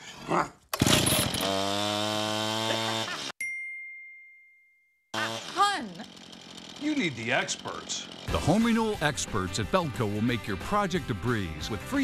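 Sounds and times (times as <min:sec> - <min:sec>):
power tool buzzing drone: 0:00.8 - 0:03.3, 0:05.2 - 0:08.9.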